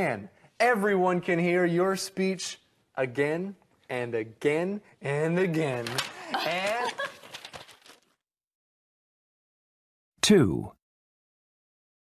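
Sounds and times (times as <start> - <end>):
burst of laughter: 6.1 - 7.5.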